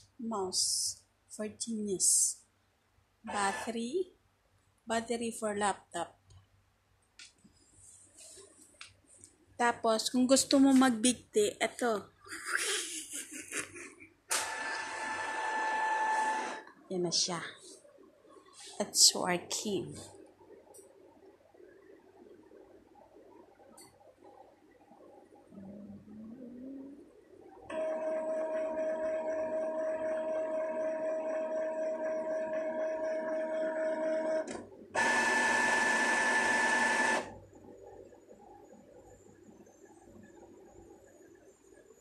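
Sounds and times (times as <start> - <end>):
inkjet printer motors whirring: 14.3 - 16.7, 27.7 - 37.3.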